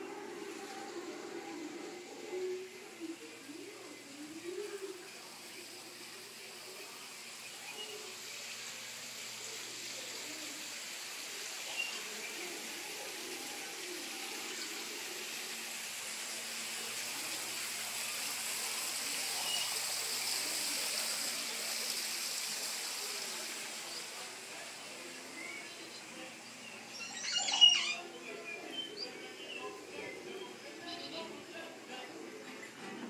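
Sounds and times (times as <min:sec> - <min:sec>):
running water: 0:00.0 - 0:33.0.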